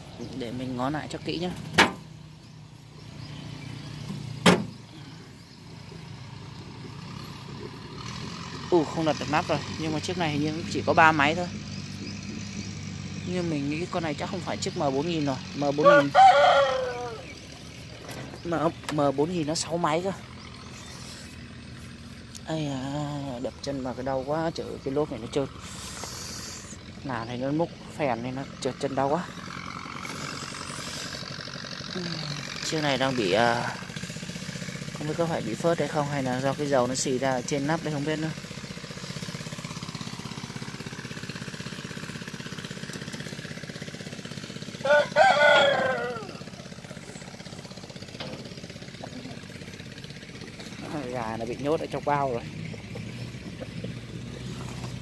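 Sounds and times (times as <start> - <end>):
low engine hum: 0.0 - 55.0.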